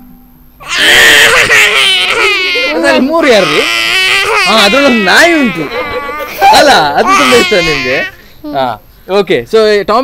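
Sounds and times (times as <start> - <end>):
child wailing: 0.6 - 8.6.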